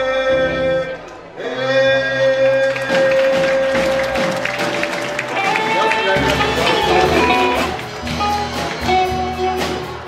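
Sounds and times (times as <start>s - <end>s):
drums: 2.7s - 10.0s
bass guitar: 3.6s - 10.0s.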